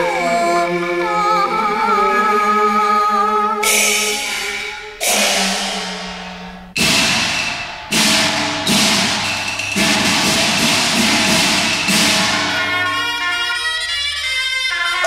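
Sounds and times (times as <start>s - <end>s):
gong and cymbal crashes: 3.6s - 12.7s.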